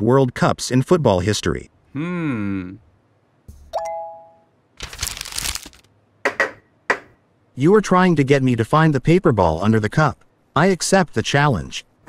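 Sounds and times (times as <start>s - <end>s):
rustling noise: 4.8s - 5.9s.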